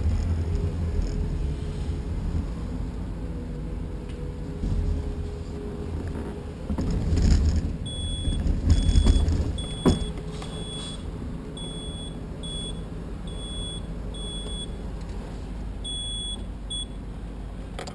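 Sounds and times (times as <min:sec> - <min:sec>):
low rumble on microphone: 0:00.0 - 0:13.3
high electronic beeps: 0:15.9 - 0:17.0.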